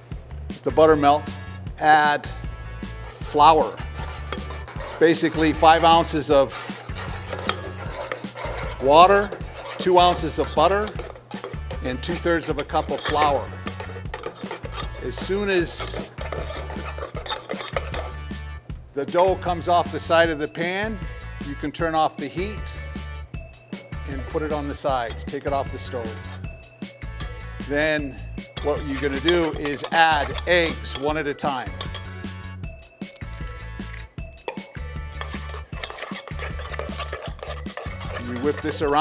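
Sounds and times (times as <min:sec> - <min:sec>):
background music with bass notes: 0:00.0 - 0:14.1, 0:14.7 - 0:17.0, 0:17.9 - 0:35.7, 0:37.9 - 0:39.0
spoon scraping dough in saucepan: 0:02.7 - 0:18.4, 0:24.2 - 0:27.5, 0:28.3 - 0:39.0
spoon knocking against metal pan: 0:28.6 - 0:32.2, 0:34.4 - 0:38.2.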